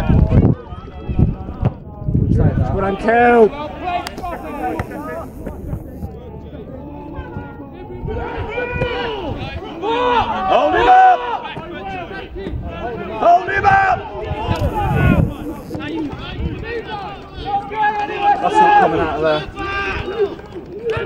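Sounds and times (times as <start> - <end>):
men shouting calls: 2.5 - 21.0.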